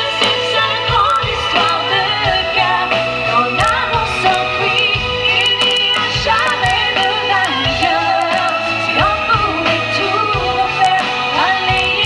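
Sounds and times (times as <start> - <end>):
live band playing: 0.0 - 12.0
woman singing: 0.0 - 12.0.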